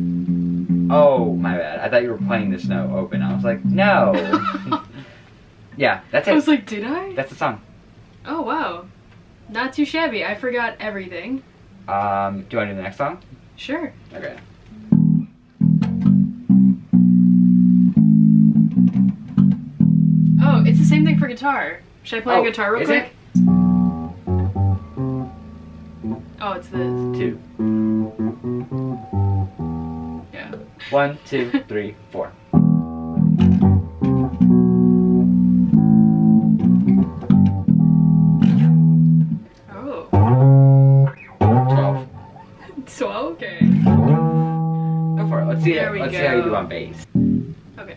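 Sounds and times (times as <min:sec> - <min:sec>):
electric bass guitar notes: 0:00.0 - 0:05.0, 0:14.7 - 0:21.3, 0:22.3 - 0:42.7, 0:43.5 - 0:47.9
person counting in: 0:22.3 - 0:23.2.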